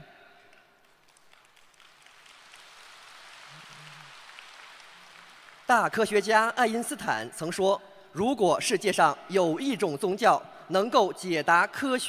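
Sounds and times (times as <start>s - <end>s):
audience applauding: 0.4s - 6.1s.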